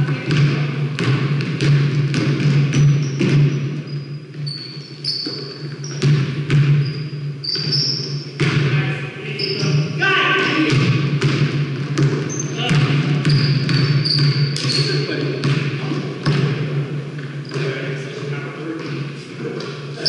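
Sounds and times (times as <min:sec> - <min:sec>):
basketball bouncing: 0:00.0 - 0:09.9, 0:10.5 - 0:18.0
sneakers squeaking on gym floor: 0:00.0 - 0:10.0, 0:11.2 - 0:16.6, 0:17.2 - 0:18.0.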